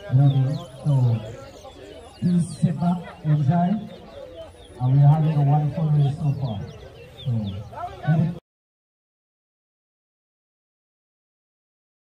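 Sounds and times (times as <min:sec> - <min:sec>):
man talking loudly: 0:00.0 - 0:01.6, 0:02.2 - 0:04.1, 0:04.8 - 0:08.4
songbirds chirping whistles: 0:00.0 - 0:08.4.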